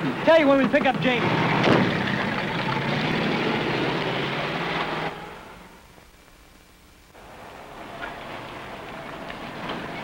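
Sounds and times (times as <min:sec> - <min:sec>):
road noise: 0:00.0 - 0:10.0.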